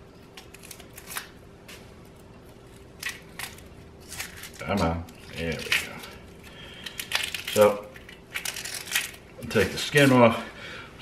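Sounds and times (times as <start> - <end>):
onion skin crackling: 0.2 - 10.3.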